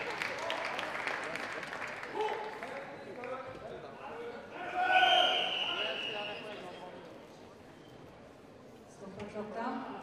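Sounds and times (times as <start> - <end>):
person shouting in a hall: 4.5 - 6.0.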